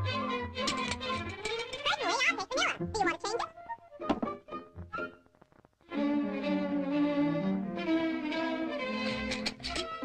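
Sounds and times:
light orchestral underscore: 0.0 - 10.0
cartoon thunk: 4.0 - 4.4.

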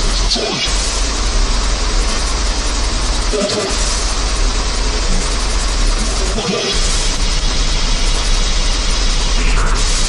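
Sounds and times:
distorted electronic dance music: 0.0 - 10.0.

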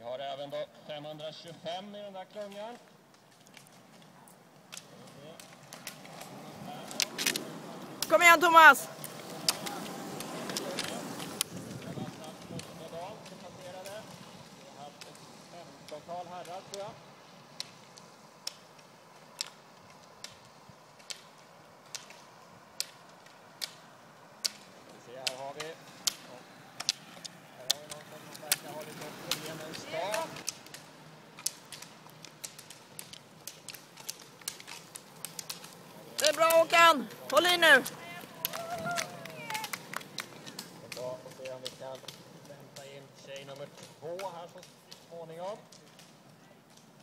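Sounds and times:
ski pole tips clicking on asphalt: 1.1 - 47.0
faint voices: 24.2 - 47.0.

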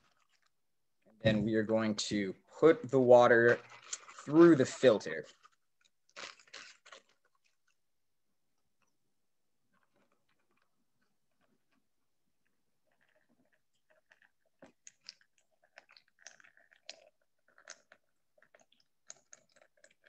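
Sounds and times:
faint crinkles and clicks: 0.0 - 1.2, 5.2 - 7.8, 9.7 - 20.0
water pouring through filter: 0.0 - 7.8, 9.7 - 20.0.

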